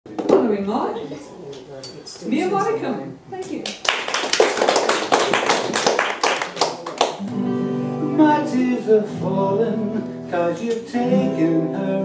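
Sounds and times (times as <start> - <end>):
audience clapping: 3.6 - 7.3.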